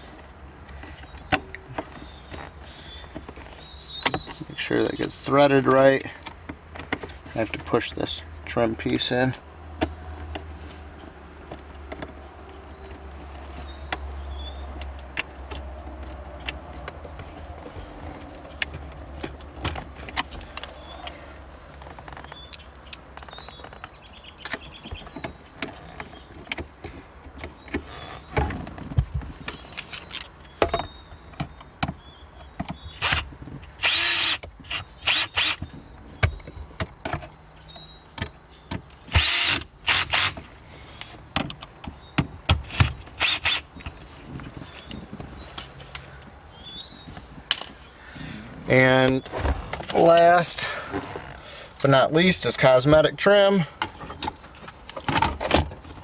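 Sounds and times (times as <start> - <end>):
sharp clicks and knocks: 13.8 - 21.2
cordless drill running: 33.8 - 34.4, 35.1 - 35.6, 39.2 - 40.4.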